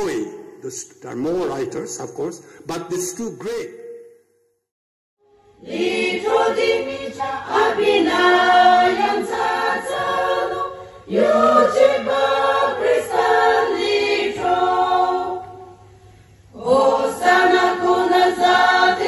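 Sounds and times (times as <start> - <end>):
women's choir singing: 5.3 - 15.9, 16.5 - 19.0.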